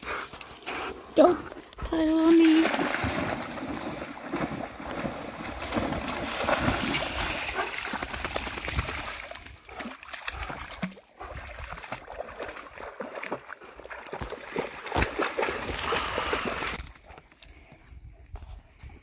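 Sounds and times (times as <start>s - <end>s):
dogs splashing in water: 1.0s - 16.9s.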